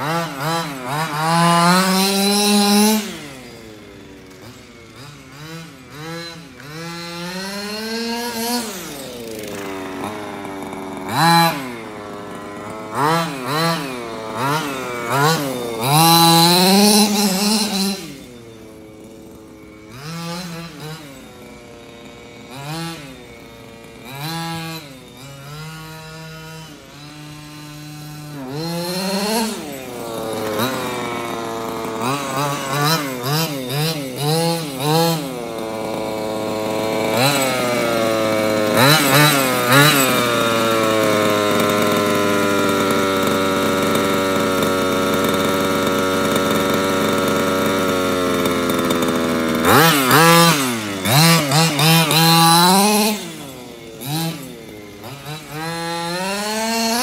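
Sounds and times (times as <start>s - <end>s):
two-stroke engine revving: 0.0s - 57.0s.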